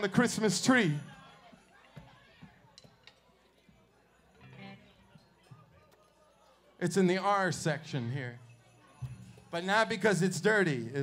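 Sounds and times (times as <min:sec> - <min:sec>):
faint chatter: 0:00.0 - 0:11.0.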